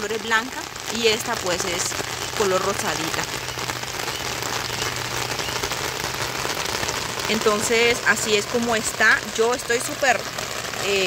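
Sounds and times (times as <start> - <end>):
rain pattering: 0.0 - 11.0.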